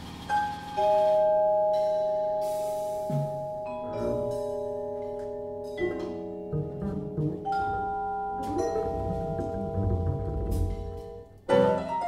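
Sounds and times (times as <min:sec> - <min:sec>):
vibraphone notes: 0:00.8 - 0:12.0.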